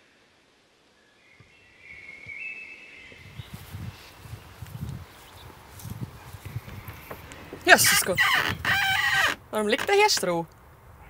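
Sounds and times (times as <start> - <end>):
footsteps on dry grass: 3.2 - 9.2.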